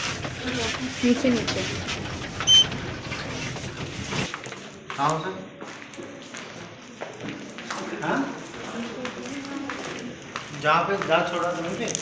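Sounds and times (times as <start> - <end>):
murmur of room noise: 0.0 - 12.0.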